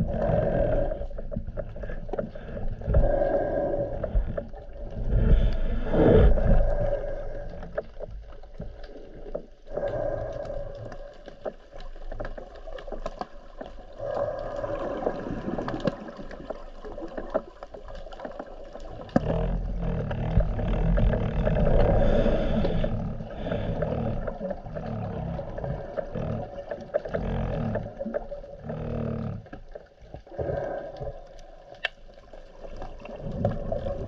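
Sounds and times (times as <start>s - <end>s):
muffled underwater rumble: 0.0s - 34.0s
small clicks: 31.4s - 32.3s.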